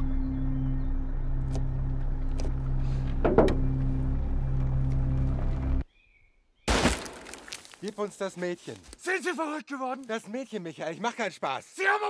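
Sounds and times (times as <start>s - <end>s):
bullet striking tree trunk: 6.7s - 7.8s.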